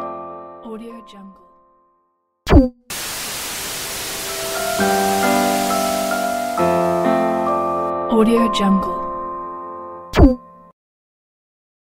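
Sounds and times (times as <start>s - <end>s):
electronic sweep falling in pitch: 2.9s - 7.8s
static hiss: 2.9s - 7.8s
synth notes held chord: 2.9s - 8.0s.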